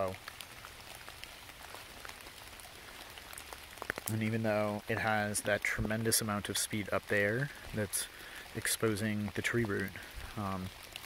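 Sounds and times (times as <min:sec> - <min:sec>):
faint drip ticks: 0:00.0 - 0:11.0
rain on wet leaves: 0:00.0 - 0:11.0
stream trickling: 0:00.0 - 0:11.0.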